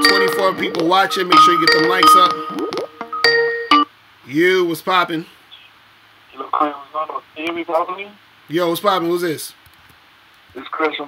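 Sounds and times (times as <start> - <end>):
person speaking over phone: 0.0 - 2.4, 10.6 - 11.0.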